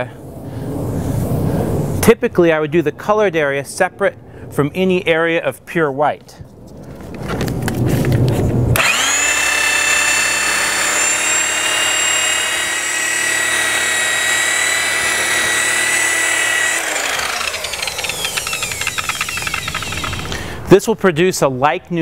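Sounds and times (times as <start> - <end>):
electric rotary buffer whining: 8.8 - 20.4.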